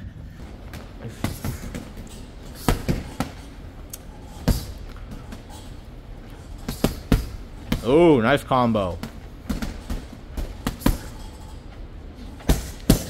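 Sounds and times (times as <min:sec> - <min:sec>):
gloves thudding on punching bag: 0:06.7 - 0:07.8, 0:12.4 - 0:13.0.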